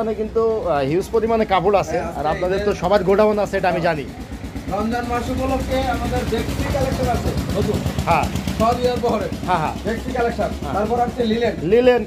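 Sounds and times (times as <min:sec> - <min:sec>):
man talking: 0:00.0 - 0:04.1, 0:04.7 - 0:12.0.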